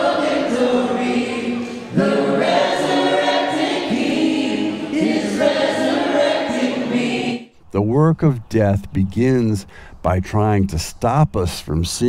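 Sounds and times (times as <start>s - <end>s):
group singing gospel song: 0.0s - 7.5s.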